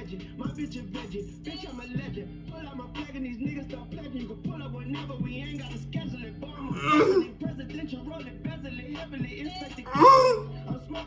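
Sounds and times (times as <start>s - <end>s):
hip hop track: 0.0s - 11.0s
man clearing his throat: 6.7s - 7.3s, 9.9s - 10.5s.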